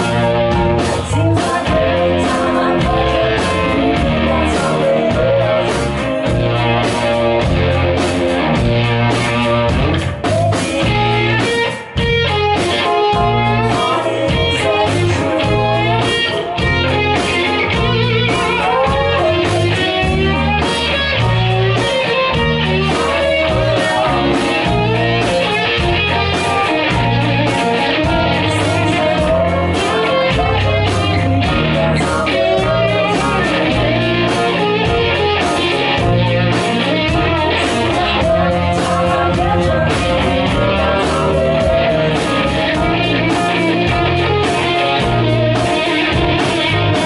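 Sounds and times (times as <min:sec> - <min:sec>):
bass guitar: 0:00.0 - 0:47.0
electric guitar melody: 0:00.0 - 0:47.0
keyboard: 0:00.0 - 0:47.0.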